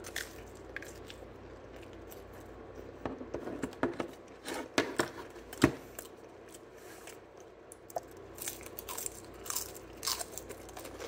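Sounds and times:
pizza crust crunching: 0:00.0 - 0:02.8, 0:06.0 - 0:11.0.

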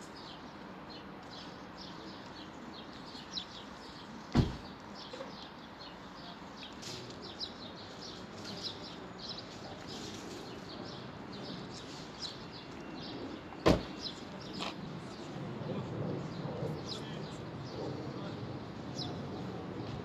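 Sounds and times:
small birds chirping: 0:00.0 - 0:15.4
traffic hum: 0:00.0 - 0:20.0.

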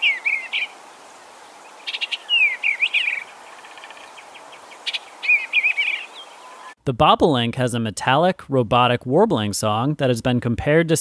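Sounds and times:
bluebird singing: 0:00.0 - 0:06.8
steady background hiss: 0:00.0 - 0:06.8.

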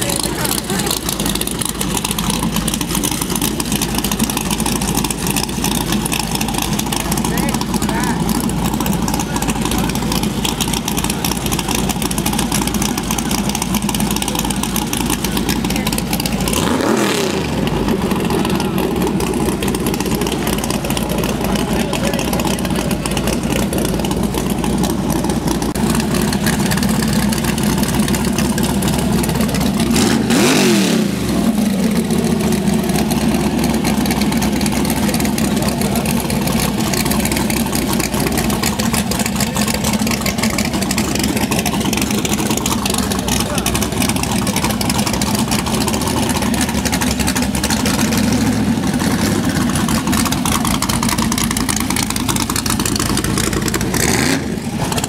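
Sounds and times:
car engine idling and revving: 0:00.0 - 0:55.0
crowd voices: 0:00.0 - 0:55.0.

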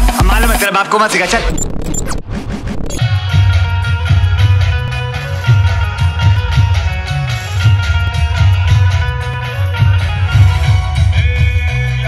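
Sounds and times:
music with steady bass line: 0:00.0 - 0:00.6, 0:01.5 - 0:12.0
glitch transition effect: 0:00.0 - 0:03.1.

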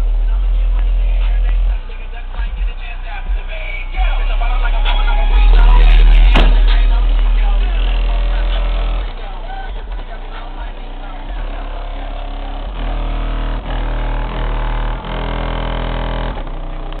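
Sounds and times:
bass-heavy music from car stereo: 0:00.0 - 0:17.0.

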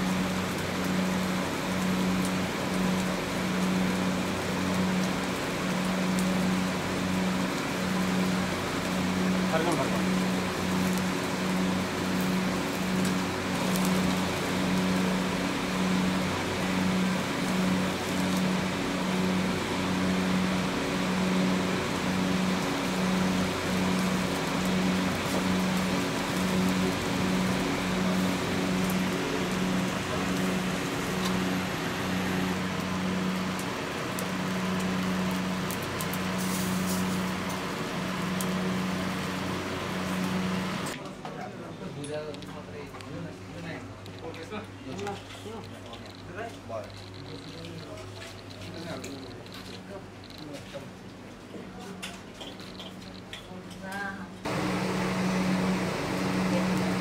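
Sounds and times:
meat grilling over charcoal: 0:00.0 - 0:41.2, 0:41.9 - 0:57.0.

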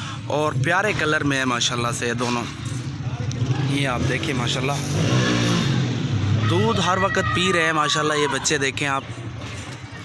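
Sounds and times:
man speaking: 0:06.4 - 0:09.2.

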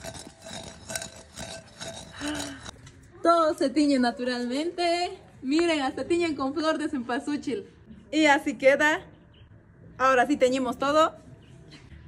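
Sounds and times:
stone pestle grinding in clay bowl: 0:00.0 - 0:02.8.

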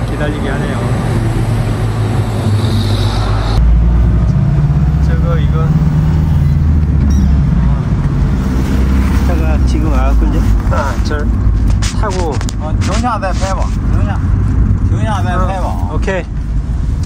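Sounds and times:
road noise inside vehicle: 0:00.0 - 0:17.0
roadside traffic: 0:00.0 - 0:17.0
truck passing: 0:00.0 - 0:17.0
van engine drone: 0:00.0 - 0:17.0.

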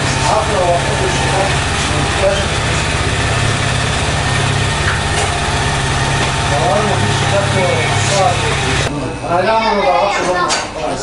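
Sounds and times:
electric hair clippers buzzing: 0:00.0 - 0:08.9.

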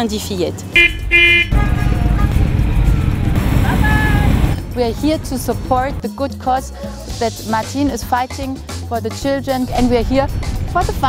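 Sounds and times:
car engine rumbling past: 0:01.0 - 0:06.0.

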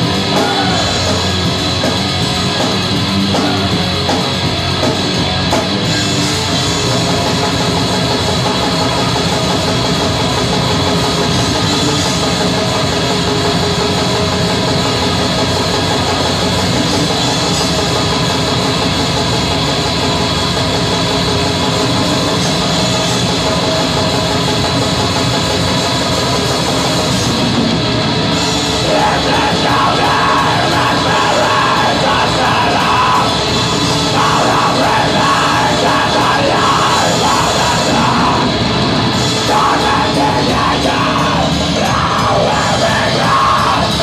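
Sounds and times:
bass guitar: 0:00.0 - 0:44.0
distorted electric guitars: 0:00.0 - 0:44.0
drum kit: 0:00.0 - 0:44.0.

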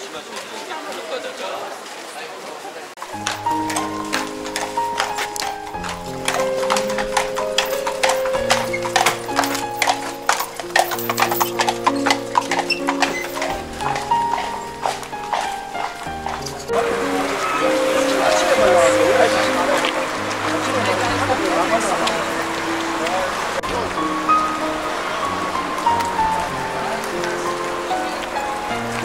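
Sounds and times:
horse hooves clip-clopping on pavement: 0:00.0 - 0:29.0
background music with held chords: 0:03.1 - 0:29.0.

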